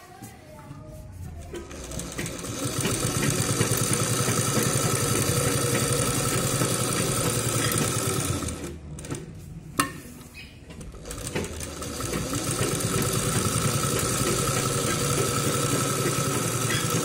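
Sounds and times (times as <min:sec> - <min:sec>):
sewing machine stitching: 0:01.5 - 0:09.2, 0:10.8 - 0:17.0.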